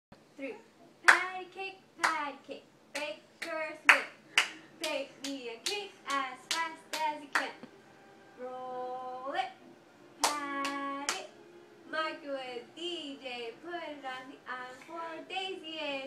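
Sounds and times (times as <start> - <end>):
hands clapping a rhythm: 1.1 - 1.4, 2.0 - 2.3, 3.0 - 7.6, 10.2 - 11.3.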